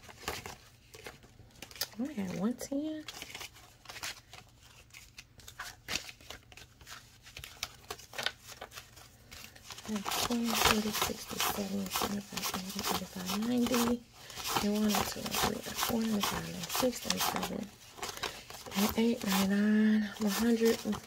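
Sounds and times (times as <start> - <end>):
banknotes crinkling and flicking: 0.0 - 21.0
person speaking: 9.8 - 17.8, 18.6 - 21.0.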